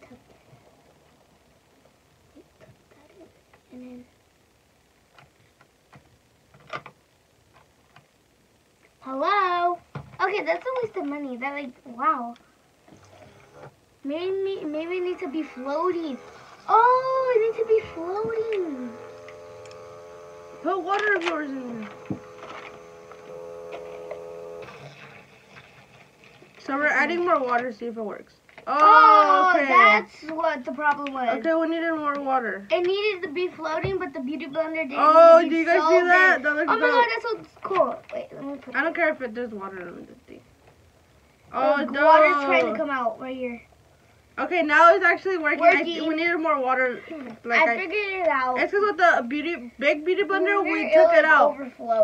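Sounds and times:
small electric motor humming: 0:12.9 - 0:26.5.

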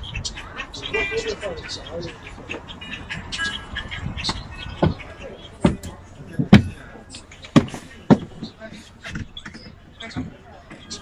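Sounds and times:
footsteps thumping on step: 0:07.6 - 0:08.6.

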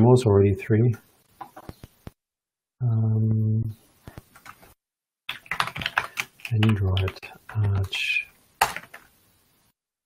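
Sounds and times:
typing on computer keyboard: 0:04.4 - 0:04.7, 0:05.3 - 0:07.9, 0:08.6 - 0:09.0.

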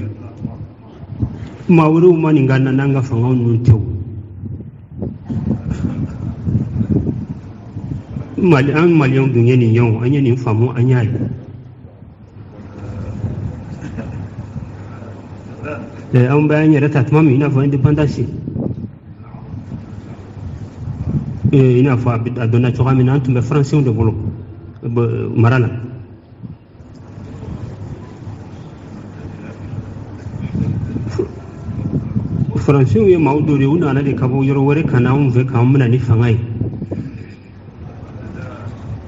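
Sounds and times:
low steady rumble: 0:00.0 - 0:39.0
low-pitched background noise: 0:00.0 - 0:39.0
faint voices: 0:04.6 - 0:18.2, 0:18.9 - 0:39.0.

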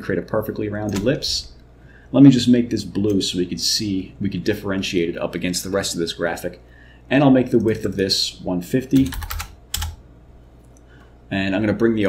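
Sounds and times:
computer keyboard keystrokes: 0:09.0 - 0:10.0.

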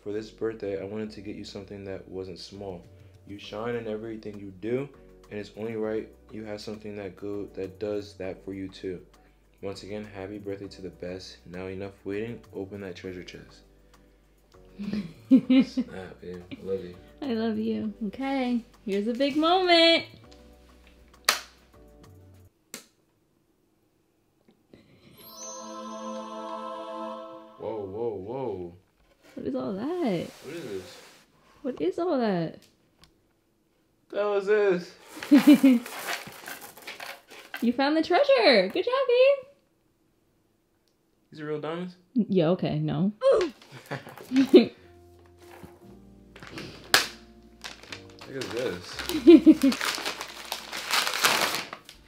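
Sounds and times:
faint background music: 0:00.0 - 0:22.6, 0:24.9 - 0:32.6, 0:34.1 - 0:39.6, 0:41.3 - 0:52.0.

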